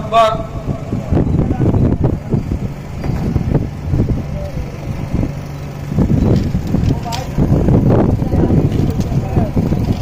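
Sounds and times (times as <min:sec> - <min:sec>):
low uneven rumbling: 0:00.0 - 0:10.0
faint voices: 0:00.1 - 0:10.0.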